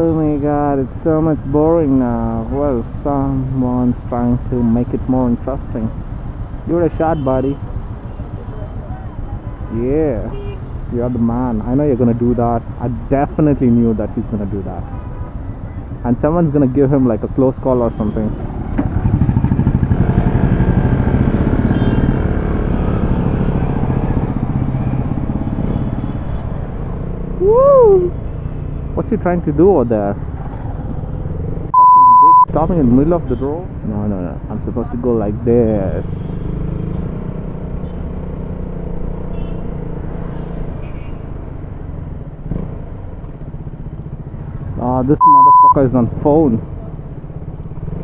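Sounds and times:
motorcycle engine pulling away: 18.6s - 25.6s, 36.3s - 40.6s.

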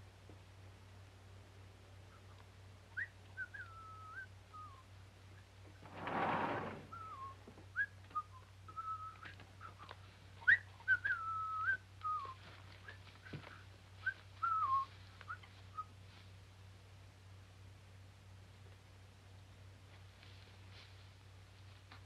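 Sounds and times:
rustling: 5.6s - 7.3s, 12.0s - 16.4s, 19.8s - 22.0s.

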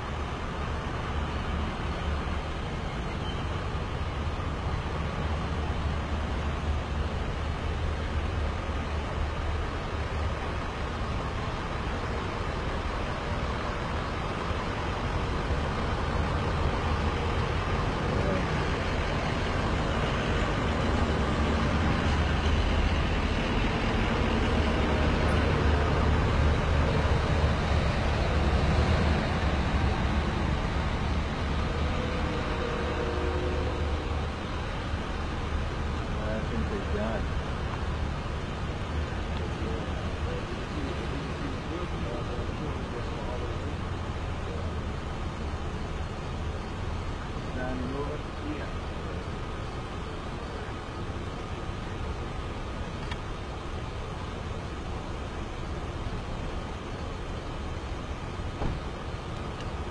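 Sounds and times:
low rumble of vehicle engines: 0.0s - 59.9s.

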